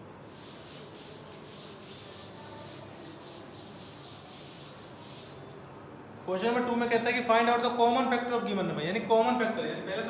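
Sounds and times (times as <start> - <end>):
duster rubbing on chalkboard: 0.3 - 5.5.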